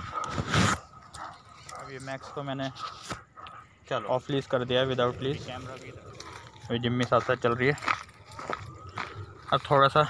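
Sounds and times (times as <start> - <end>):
dog barking: 0.9 - 3.7.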